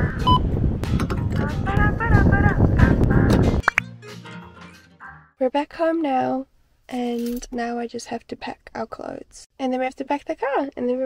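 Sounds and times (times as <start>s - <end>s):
wind rumbling on microphone: 0.0s - 3.6s
petrol pump electronic beep: 0.2s - 0.4s.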